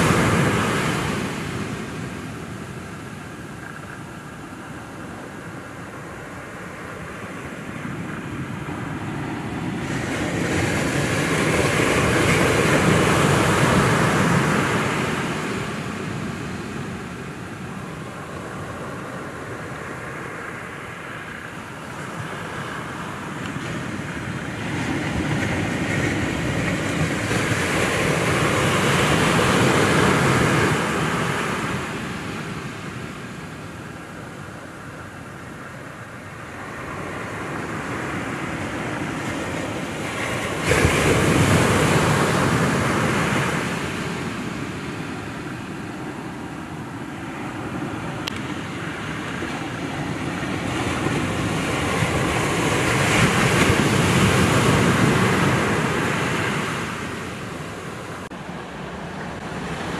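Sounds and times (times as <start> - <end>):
ocean surf breaking: 0.0 - 59.9
wind on microphone: 21.4 - 59.9.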